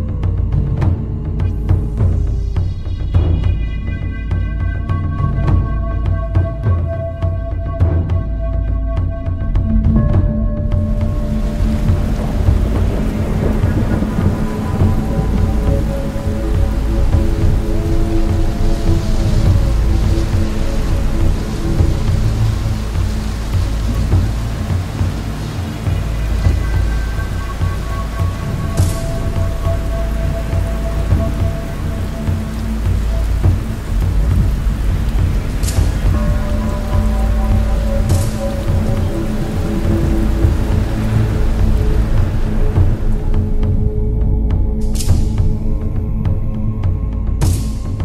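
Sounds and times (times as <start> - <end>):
long held musical tones: 0.0 - 46.6
steady rain: 0.0 - 48.0
deep rolling thunder: 10.3 - 43.8.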